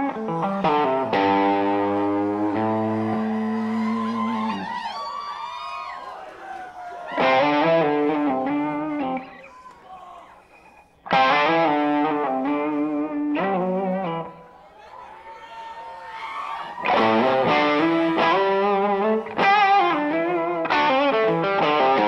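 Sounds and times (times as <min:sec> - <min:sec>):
distorted electric guitar: 0:00.0 - 0:04.7, 0:07.2 - 0:09.3, 0:11.1 - 0:14.4, 0:16.8 - 0:22.0.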